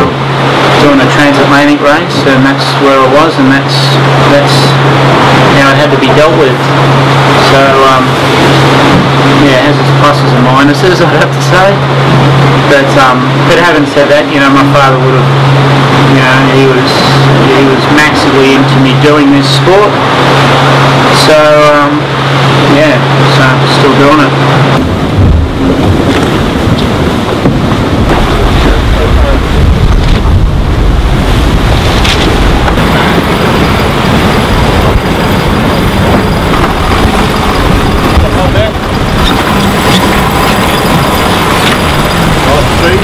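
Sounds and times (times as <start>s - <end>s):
low steady hum: 0.0s - 43.0s
rush of wind and water: 0.0s - 43.0s
wind buffeting microphone: 0.0s - 43.0s.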